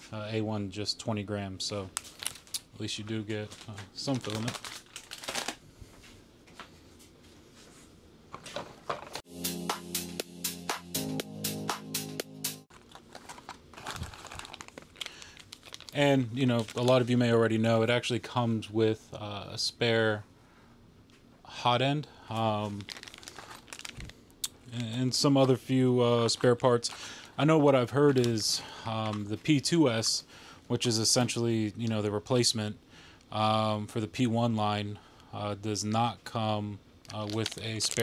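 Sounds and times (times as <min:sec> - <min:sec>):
man talking: 0:00.0 - 0:01.9, 0:02.7 - 0:04.6, 0:15.9 - 0:20.3, 0:21.5 - 0:22.9, 0:24.6 - 0:38.0
rustle and clatter of packaging: 0:01.9 - 0:02.7, 0:03.3 - 0:07.7, 0:12.7 - 0:17.3, 0:22.6 - 0:24.2, 0:26.2 - 0:30.1, 0:37.0 - 0:38.0.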